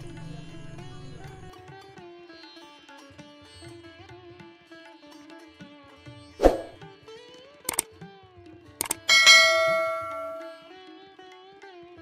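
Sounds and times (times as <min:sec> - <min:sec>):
soft sitar music: 0:00.0 - 0:12.0
double mouse click: 0:08.8 - 0:09.1
notification bell ding: 0:08.8 - 0:10.7.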